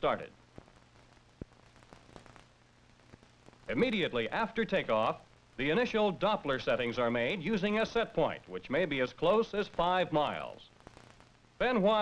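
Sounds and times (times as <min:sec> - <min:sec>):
faint film hiss: 0:00.0 - 0:12.0
low steady hum: 0:00.0 - 0:12.0.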